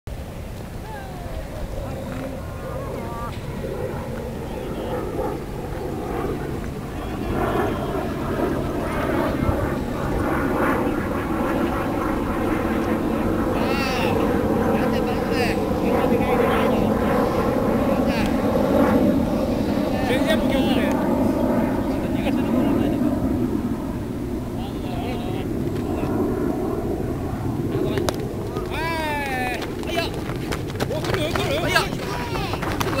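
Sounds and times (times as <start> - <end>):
players calling out and chattering: 0.8 - 23.1, 27.7 - 33.0.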